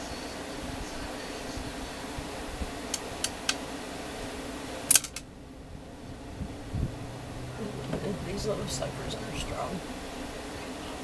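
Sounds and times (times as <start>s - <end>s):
steady background hum: 0.0s - 11.0s.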